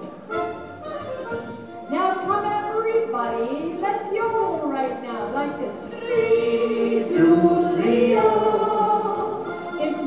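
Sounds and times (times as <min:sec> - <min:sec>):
music: 0:00.0 - 0:10.0
voices yodeling: 0:06.0 - 0:09.6.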